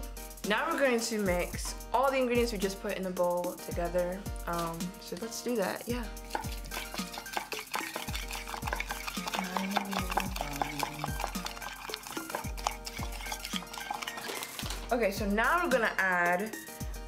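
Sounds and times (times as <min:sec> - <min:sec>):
spoon stirring in a ceramic mug: 0:05.1 - 0:14.9.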